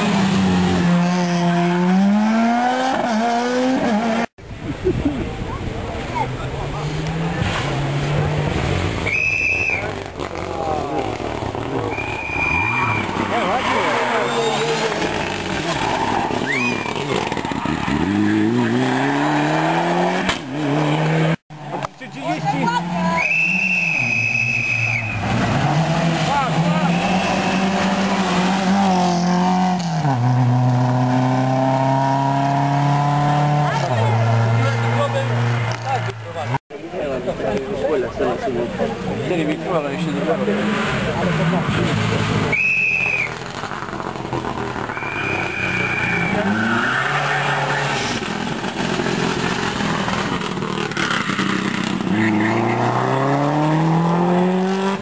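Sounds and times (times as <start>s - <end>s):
rally car engines revving hard: 0.0s - 4.4s, 5.9s - 36.6s, 38.2s - 55.0s
tyres squealing: 11.6s - 20.0s, 42.5s - 49.4s.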